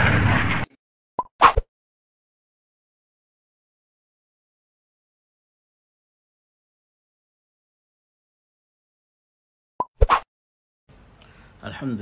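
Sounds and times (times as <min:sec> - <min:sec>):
pop sound effects: 0:01.2 - 0:01.7, 0:09.8 - 0:10.3.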